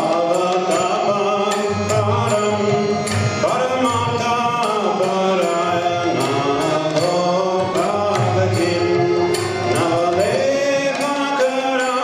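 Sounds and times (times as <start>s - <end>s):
drum beats: 0.0s - 12.0s
harmonium chords: 0.0s - 12.0s
man singing: 0.0s - 12.0s.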